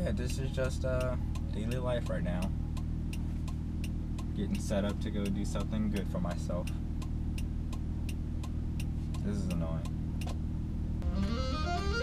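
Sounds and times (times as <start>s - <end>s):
car engine and road hum: 0.0s - 12.0s
turn signal ticking: 0.0s - 12.0s.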